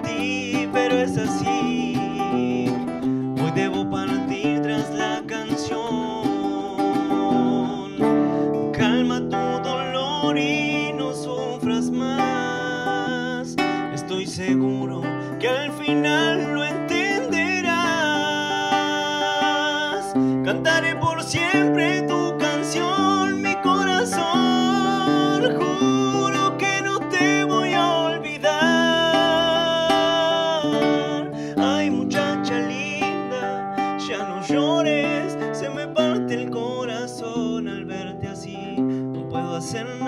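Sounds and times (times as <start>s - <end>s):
acoustic guitar: 0.0s - 40.0s
man singing: 0.0s - 40.0s.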